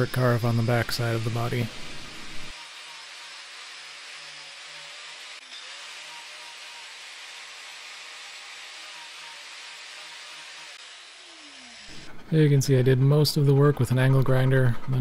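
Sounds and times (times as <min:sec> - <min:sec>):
angle grinder cutting wood: 0:00.0 - 0:12.1.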